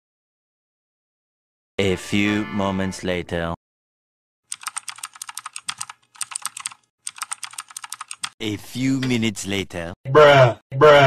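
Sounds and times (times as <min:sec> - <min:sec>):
fast keyboard typing: 0:04.5 - 0:08.4.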